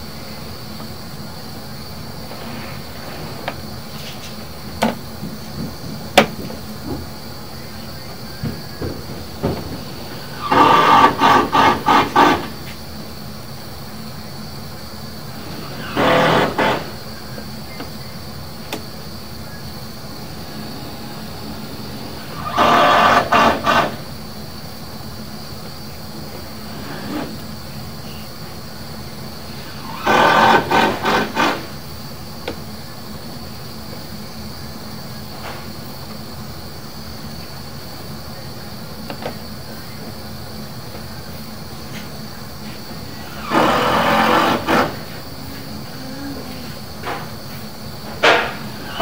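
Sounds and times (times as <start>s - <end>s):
steady hum: 0.0s - 49.0s
faint high whine: 6.0s - 49.0s.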